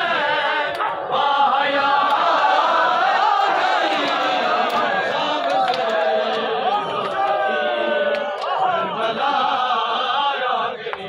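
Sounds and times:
men chanting a lament: 0.0 - 11.0
crowd beating their chests: 0.1 - 9.5.

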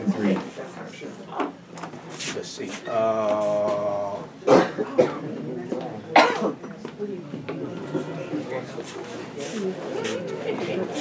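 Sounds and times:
faint voices: 0.0 - 11.0
person coughing: 4.5 - 5.3, 6.2 - 6.6.

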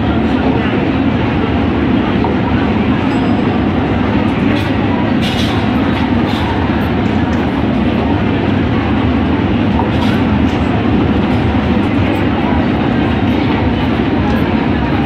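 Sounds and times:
crowd chatter: 0.0 - 15.0
rumbling hum of mall: 0.0 - 15.0.

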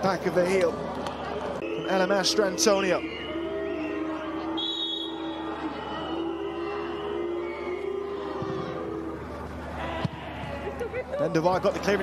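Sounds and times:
stadium crowd chanting: 1.6 - 9.3.

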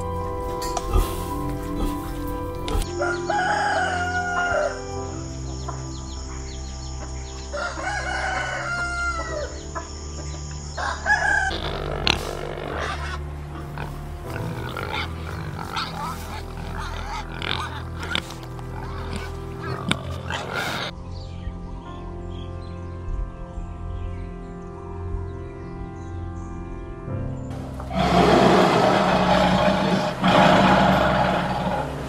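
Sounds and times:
soft piano music: 0.0 - 28.4
rooster crowing: 2.9 - 4.9, 7.6 - 9.6, 10.8 - 11.6
short rough noises: 27.8 - 32.0.

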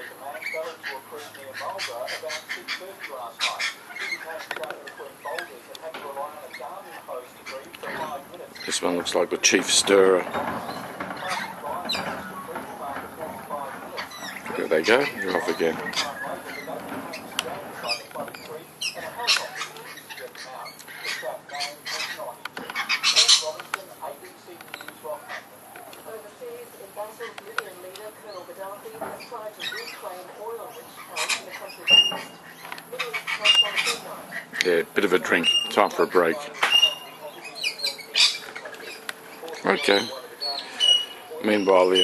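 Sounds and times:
faint talking: 0.0 - 42.0
lorikeets screeching: 0.0 - 42.0
parrots chattering: 0.0 - 42.0.

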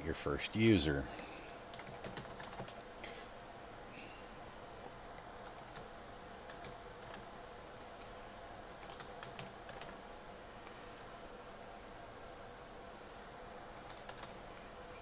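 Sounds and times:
keyboard typing: 1.2 - 2.9, 4.4 - 5.9, 6.5 - 7.7, 8.8 - 10.0, 13.8 - 14.4.

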